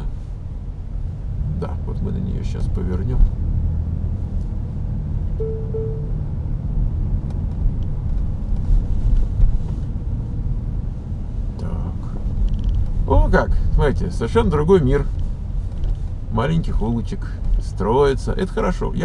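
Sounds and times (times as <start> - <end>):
engine and tyres rumble: 0.0 - 19.0
two-part tone: 5.4 - 6.2.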